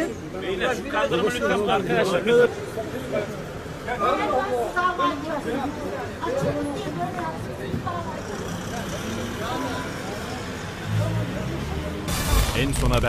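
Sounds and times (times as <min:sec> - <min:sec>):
people chattering: 0:00.0 - 0:13.0
street traffic noise: 0:00.0 - 0:13.0.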